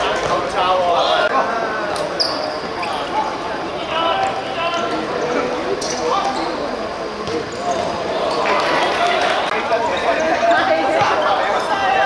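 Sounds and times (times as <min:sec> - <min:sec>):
players shouting: 0:02.2 - 0:12.0.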